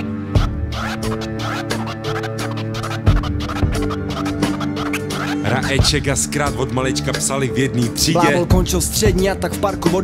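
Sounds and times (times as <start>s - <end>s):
hip hop beat: 0.0s - 10.0s
turntable scratching: 0.7s - 6.0s.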